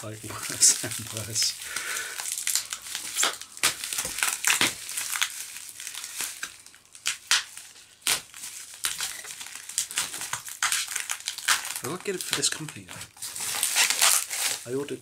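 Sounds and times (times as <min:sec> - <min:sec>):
plastic wrapping crinkling: 0:00.0 - 0:15.0.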